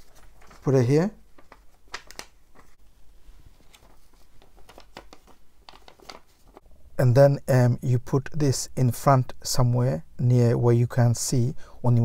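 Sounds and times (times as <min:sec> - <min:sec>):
paper crackling and tapping: 0:00.0 - 0:02.8, 0:03.6 - 0:06.6.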